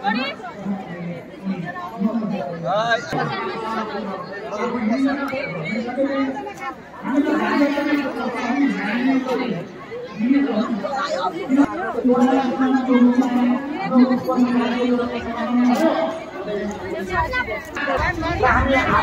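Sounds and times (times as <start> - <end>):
people chattering: 0.0 - 19.0.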